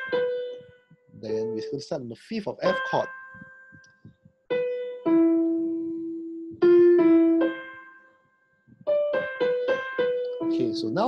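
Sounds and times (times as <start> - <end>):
slow piano melody: 0.0 - 11.0.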